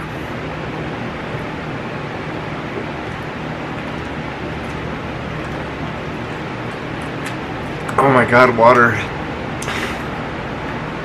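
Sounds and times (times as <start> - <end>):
low constant hum: 0.0 - 11.0.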